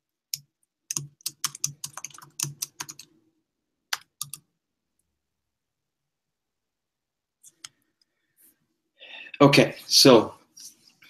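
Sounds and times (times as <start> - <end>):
typing on computer keyboard: 0.3 - 3.1, 3.9 - 4.5.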